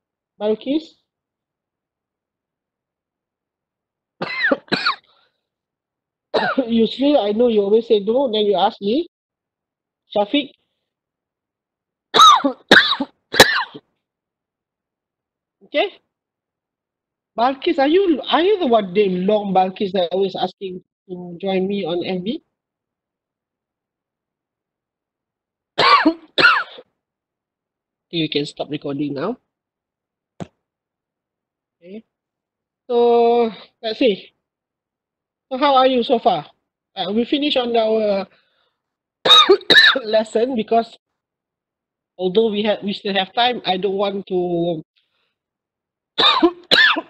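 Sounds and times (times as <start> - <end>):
woman clearing throat coughs: 4.2 - 5.1, 6.4 - 6.6, 12.2 - 13.8, 25.8 - 26.8, 39.3 - 40.0, 46.2 - 47.0.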